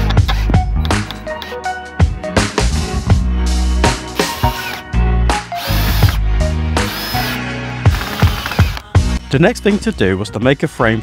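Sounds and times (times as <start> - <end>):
background music with beat: 0.0 - 10.0
cordless drill driving screw: 4.2 - 4.9, 5.6 - 6.2, 6.8 - 8.9.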